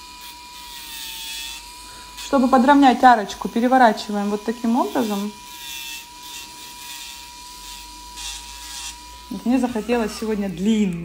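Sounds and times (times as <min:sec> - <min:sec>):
nail drill whining and grinding: 0:00.0 - 0:11.0.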